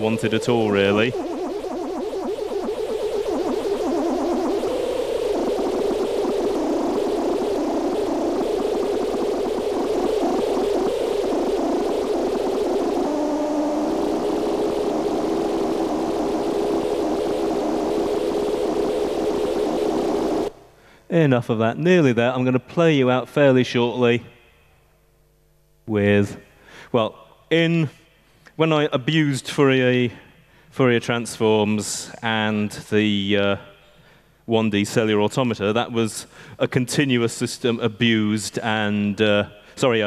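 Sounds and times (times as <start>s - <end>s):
synthesizer fluttering drone: 0.0s - 20.6s
noise hiss: 0.0s - 40.0s.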